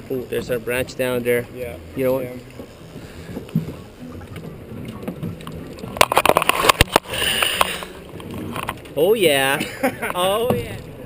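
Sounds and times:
water sloshing against boat hull: 0:00.0 - 0:11.0
sharp splashes and knocks: 0:02.2 - 0:11.0.

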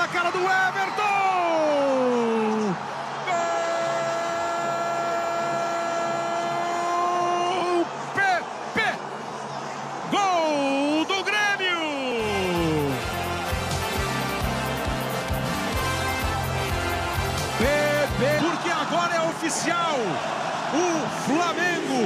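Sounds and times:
background music with steady beat: 0:12.2 - 0:18.7.

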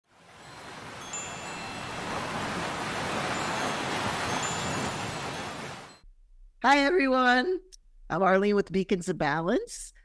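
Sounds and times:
rushing wash of noise: 0:00.1 - 0:06.0
wind chimes ringing faintly: 0:00.2 - 0:06.1.

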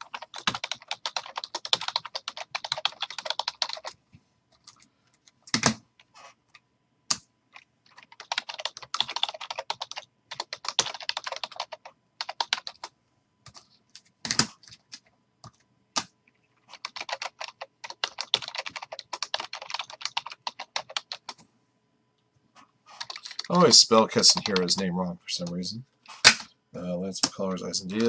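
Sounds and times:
typing on computer keyboard: 0:00.0 - 0:04.0, 0:07.1 - 0:12.9, 0:13.5 - 0:21.4, 0:23.0 - 0:23.5.

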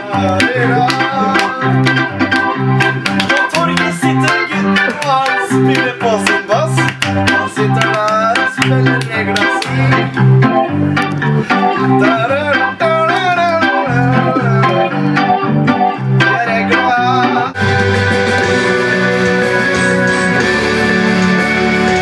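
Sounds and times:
bass notes: 0:00.0 - 0:22.0
synthesizer organ chords and melody: 0:00.0 - 0:22.0.

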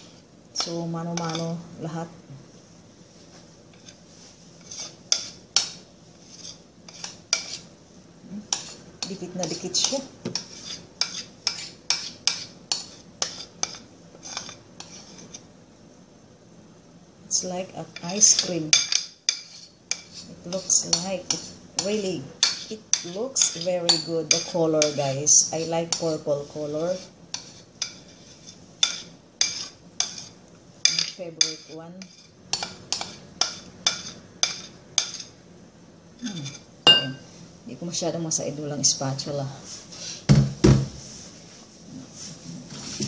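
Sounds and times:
spoon clinking against dish: 0:36.4 - 0:37.3.

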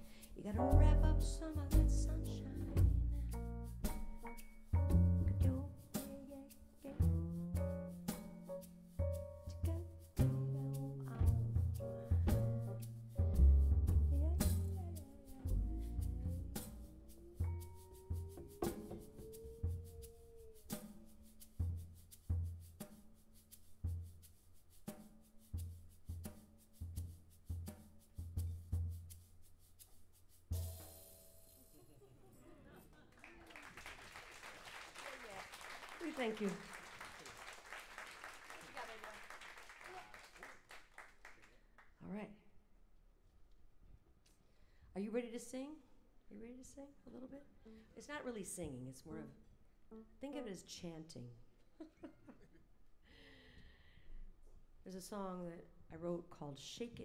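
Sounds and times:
person singing: 0:00.0 - 0:03.4, 0:05.4 - 0:07.1, 0:14.1 - 0:20.5
jazz combo playing: 0:00.5 - 0:20.4
applause: 0:33.1 - 0:41.9.

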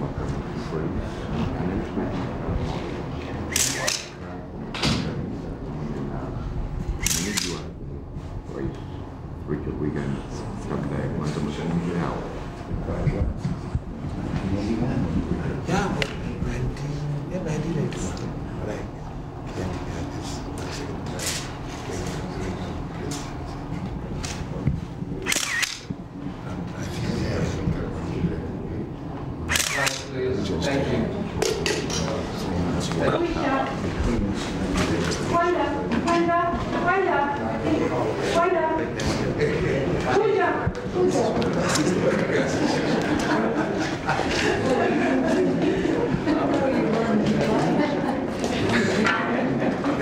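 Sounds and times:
room murmur: 0:00.0 - 0:50.0
camera shutters clicking: 0:03.5 - 0:04.1, 0:07.0 - 0:07.6, 0:25.3 - 0:25.9, 0:29.5 - 0:30.1.

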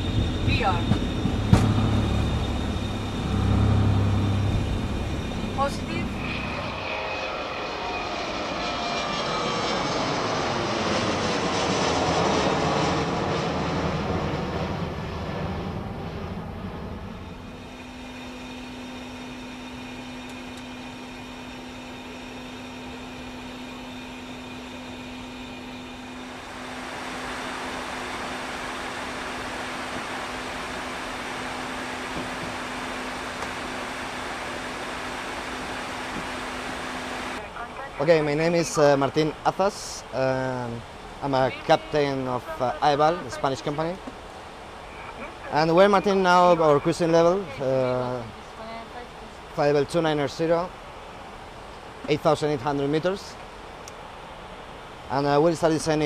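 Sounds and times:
runway rumble: 0:00.0 - 0:18.2
airflow and engine noise: 0:00.0 - 0:56.0
steady low hum: 0:00.0 - 0:56.0.

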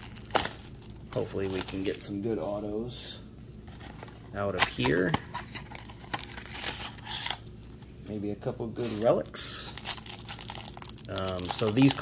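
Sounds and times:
crinkling: 0:00.0 - 0:02.2, 0:08.8 - 0:12.0.

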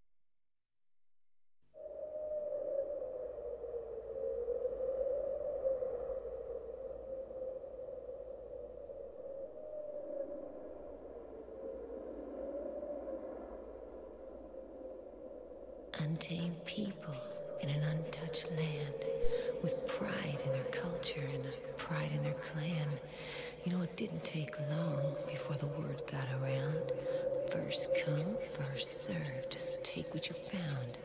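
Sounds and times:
wavering synthesizer tone: 0:01.8 - 0:31.0
faint low hum: 0:15.8 - 0:31.0.

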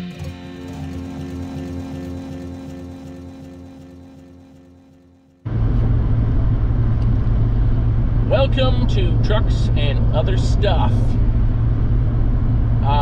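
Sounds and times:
background music with sustained chords: 0:00.0 - 0:13.0
pickup truck driving from inside: 0:05.5 - 0:13.0.

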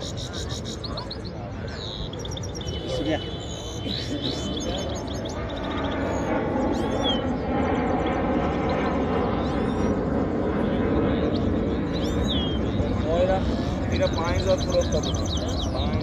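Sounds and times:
crowd chatter: 0:00.0 - 0:07.6
high gliding bird calls: 0:00.0 - 0:08.0, 0:10.8 - 0:16.0.

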